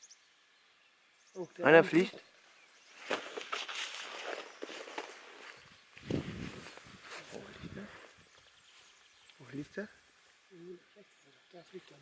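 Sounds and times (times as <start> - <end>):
rustling: 2.9 - 9.4.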